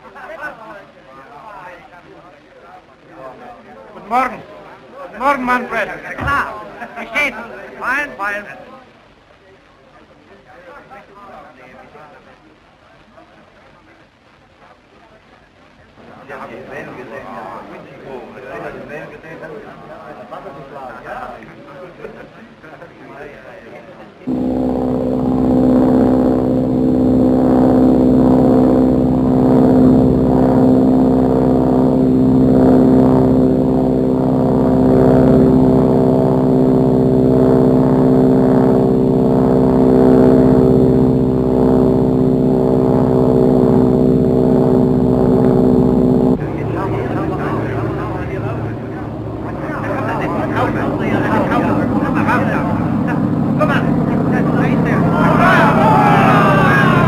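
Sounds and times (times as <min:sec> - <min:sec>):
biplane engines droning: 0:24.3 - 0:57.0
rough noisy engine: 0:24.3 - 0:57.0.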